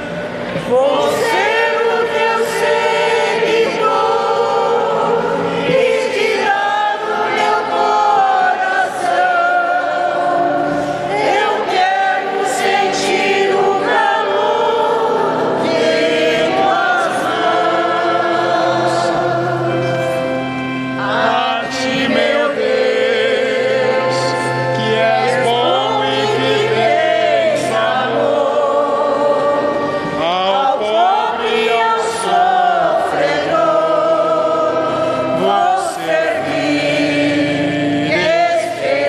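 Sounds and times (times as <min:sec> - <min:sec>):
church choir singing a hymn: 0:00.0 - 0:39.0.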